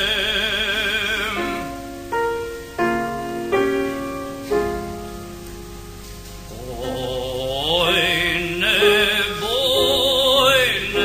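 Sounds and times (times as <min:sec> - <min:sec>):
man singing with vibrato: 0:00.0 - 0:01.9, 0:06.4 - 0:11.0
sustained accompanying chord: 0:00.0 - 0:11.0.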